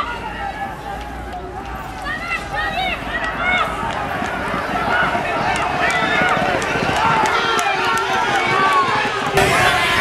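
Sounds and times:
excited voices shouting: 0:00.0 - 0:10.0
outdoor background noise: 0:00.0 - 0:10.0.

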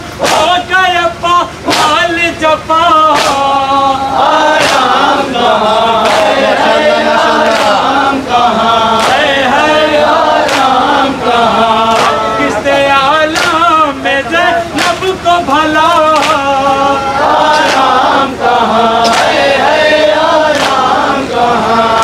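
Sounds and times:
men chanting together: 0:00.0 - 0:22.0.

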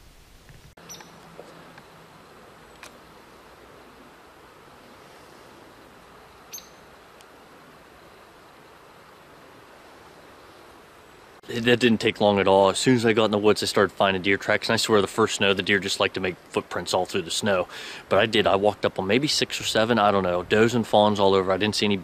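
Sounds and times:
faint steady hiss: 0:00.0 - 0:22.0
high bird chirp: 0:00.8 - 0:01.2, 0:06.5 - 0:06.8.

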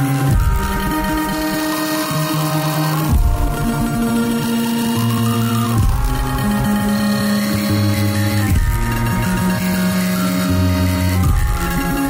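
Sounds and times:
music track with low bass: 0:00.0 - 0:12.0.

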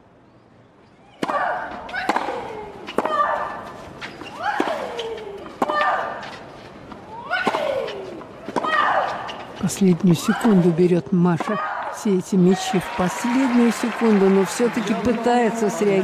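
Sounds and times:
racket hitting tennis ball: 0:01.2 - 0:03.6, 0:07.4 - 0:09.3.

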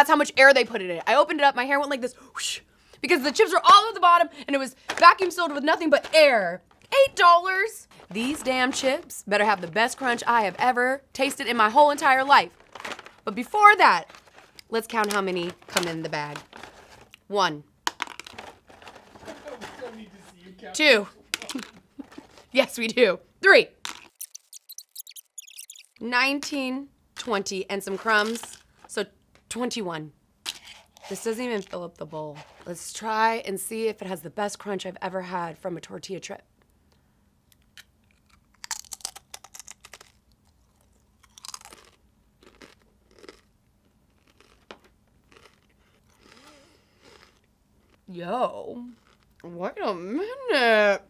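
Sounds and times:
crunchy chip being chewed: 0:24.0 - 0:26.0, 0:37.8 - 0:48.0, 0:48.8 - 0:49.4.

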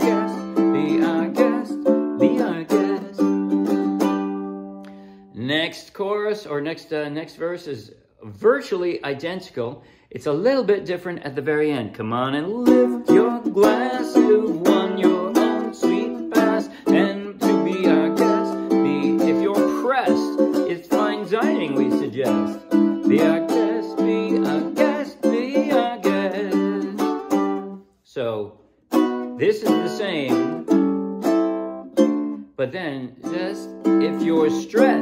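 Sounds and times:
man singing: 0:00.0 - 0:03.8, 0:12.0 - 0:28.5, 0:29.3 - 0:30.7, 0:32.6 - 0:35.0
ukulele strumming: 0:00.0 - 0:05.2, 0:12.4 - 0:27.8, 0:28.9 - 0:35.0.

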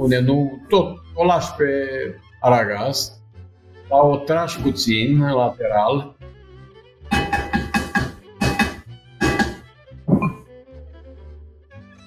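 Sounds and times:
background music with violin: 0:00.0 - 0:12.0
wooden spoon scraping metal pot: 0:07.1 - 0:09.6.

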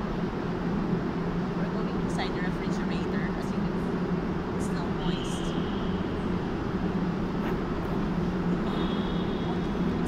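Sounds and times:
faint high whine: 0:00.0 - 0:10.0
indoor building rumble: 0:00.0 - 0:10.0.

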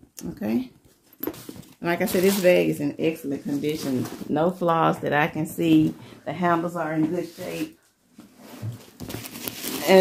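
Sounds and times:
bag rustling and crinkling: 0:01.4 - 0:02.8, 0:08.4 - 0:10.0.

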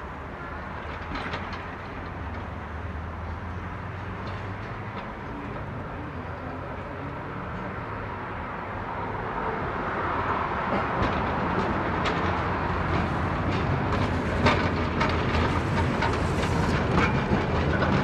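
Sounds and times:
tram wheels rolling on rails: 0:00.0 - 0:18.0.

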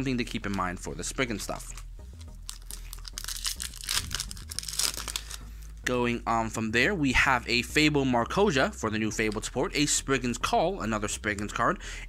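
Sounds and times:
foil wrapper tearing: 0:01.7 - 0:05.5.

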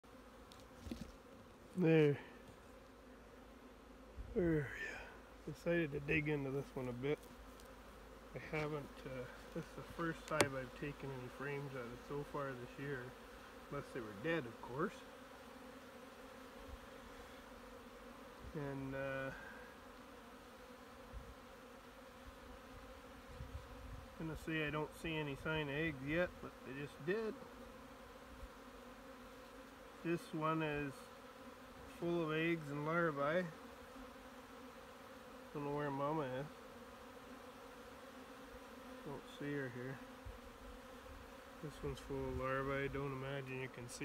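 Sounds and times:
honeybees buzzing: 0:00.0 - 0:44.0.

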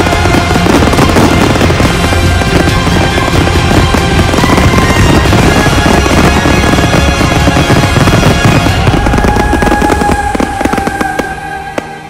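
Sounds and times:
fireworks bursting and crackling: 0:00.0 - 0:12.0
music playing: 0:00.0 - 0:12.0.

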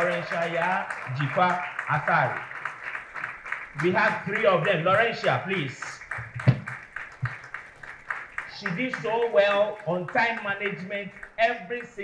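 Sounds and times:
group hand clapping: 0:00.0 - 0:12.0.

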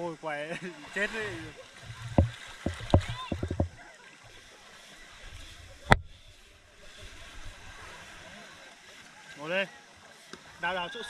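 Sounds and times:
camera handling knocks and taps: 0:02.0 - 0:03.8.

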